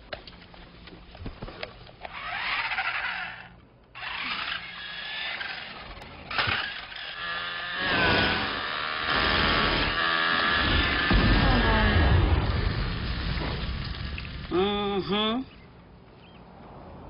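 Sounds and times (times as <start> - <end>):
toy car electric motor whining: 2.0 - 12.1.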